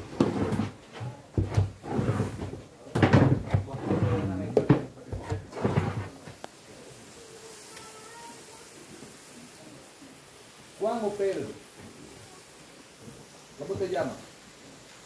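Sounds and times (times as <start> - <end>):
low steady background noise: 0.0 - 15.0.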